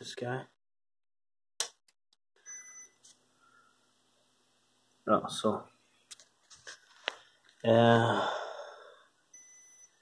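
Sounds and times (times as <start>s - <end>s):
short high beep: 2.4s - 3.0s
faint steady hum: 2.4s - 10.0s.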